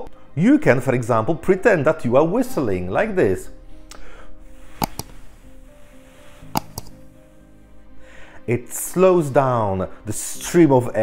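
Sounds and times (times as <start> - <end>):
soft background music: 0.0 - 11.0
short clicks: 4.8 - 5.2, 6.5 - 7.0.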